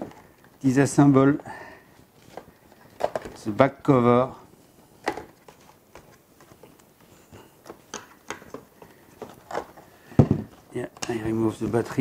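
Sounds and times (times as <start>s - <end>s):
plastic clicks and knocks: 7.6s - 11.2s.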